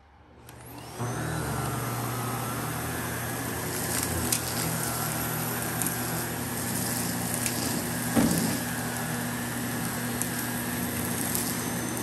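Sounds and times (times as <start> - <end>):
vacuum cleaner running: 0.4 - 12.0.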